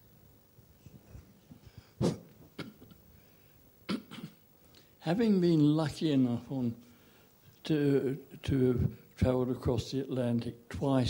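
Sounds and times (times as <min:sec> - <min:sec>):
person coughing: 0:03.9 - 0:04.4.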